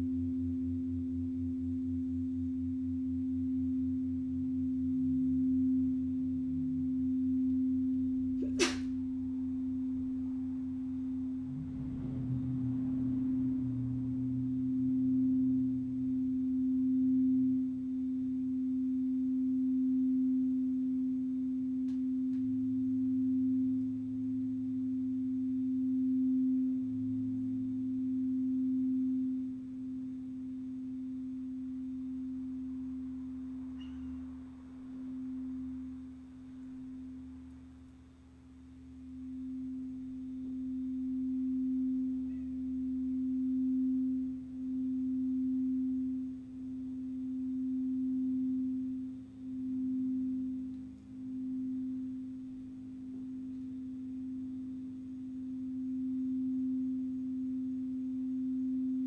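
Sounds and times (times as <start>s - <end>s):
singing bowl tone: 0.0s - 59.0s.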